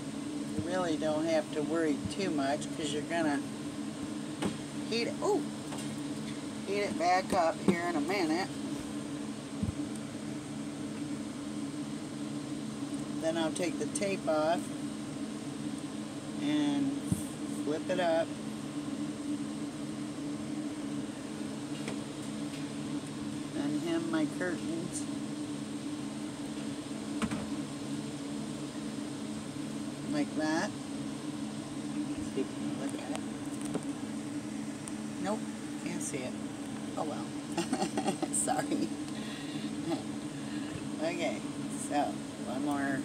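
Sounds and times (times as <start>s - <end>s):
steady mechanical hum: 0.0s - 43.0s.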